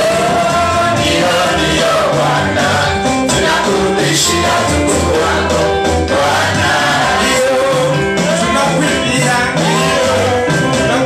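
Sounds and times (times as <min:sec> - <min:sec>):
group singing gospel song: 0:00.0 - 0:11.0
instrumental accompaniment: 0:00.0 - 0:11.0.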